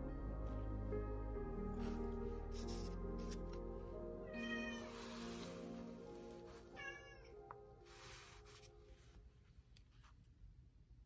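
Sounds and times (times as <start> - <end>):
soft background music: 0.0 - 10.1
cat meowing: 4.3 - 5.0, 6.7 - 7.3
paper rustling on towel: 4.8 - 6.8, 7.8 - 10.2.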